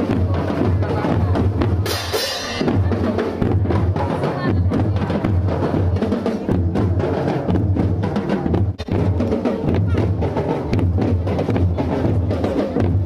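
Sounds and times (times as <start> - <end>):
bass drums pounding march beat: 0.0 - 13.0
rapid snare drum strokes: 0.0 - 13.0
cymbal crash: 1.8 - 2.8.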